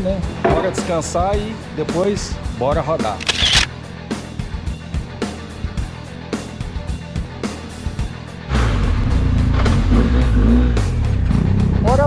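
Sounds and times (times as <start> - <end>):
background music with a beat: 3.7 - 12.0.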